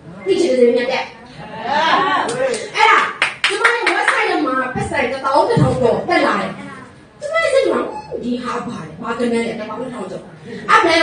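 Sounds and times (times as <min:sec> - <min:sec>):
audience clapping: 0:02.3 - 0:04.3.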